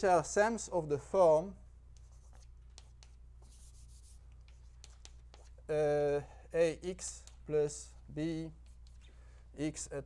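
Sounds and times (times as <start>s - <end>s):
chalk tapping and scratching: 1.9s - 5.7s, 7.0s - 9.1s.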